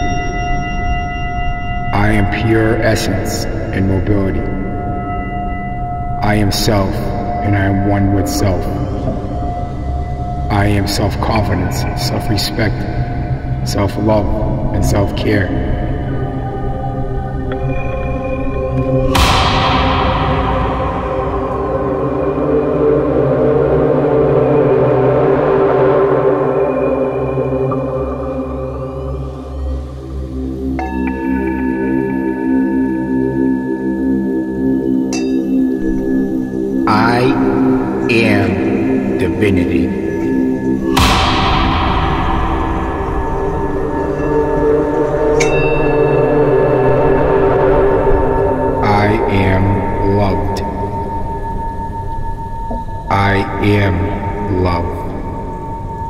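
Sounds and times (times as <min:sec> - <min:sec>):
synthesizer drone: 0:00.0 - 0:56.0
bell strike ringing: 0:35.1 - 0:35.6.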